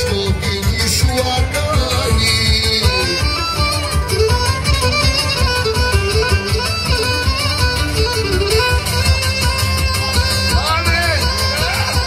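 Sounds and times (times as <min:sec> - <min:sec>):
strummed lutes: 0:00.0 - 0:12.0.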